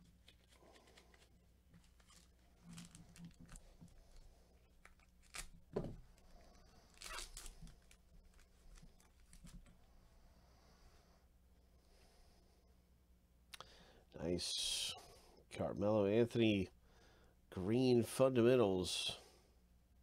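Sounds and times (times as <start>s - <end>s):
foil wrapper tearing and crinkling: 0.0s - 5.8s, 6.8s - 9.6s.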